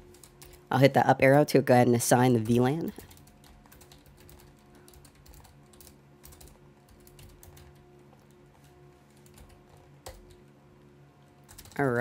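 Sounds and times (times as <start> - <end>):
faint keyboard typing: 0.0 - 0.7, 2.3 - 10.6, 11.2 - 12.0.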